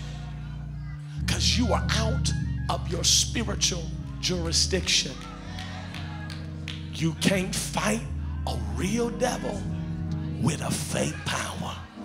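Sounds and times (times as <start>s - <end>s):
soft keyboard chords: 0.0s - 12.0s
person preaching: 0.8s - 6.0s, 6.8s - 12.0s.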